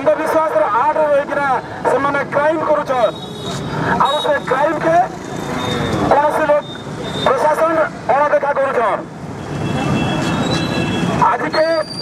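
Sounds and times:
man speaking into a microphone: 0.0s - 3.2s, 3.8s - 5.2s, 6.0s - 9.1s, 11.2s - 12.0s.

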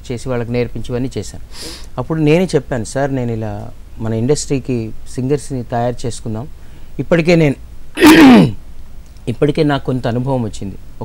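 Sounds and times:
man clearing throat: 8.0s - 8.6s.

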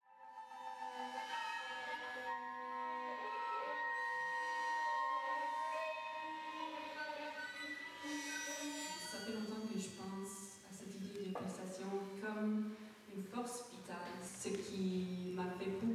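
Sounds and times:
flute long held notes: 0.0s - 10.2s
bowed strings long held notes: 0.3s - 10.4s.

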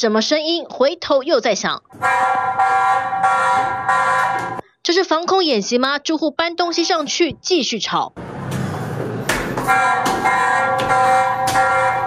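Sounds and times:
horn-like electronic alarm tone: 2.0s - 4.6s, 9.7s - 12.0s
knock: 9.3s - 11.7s.

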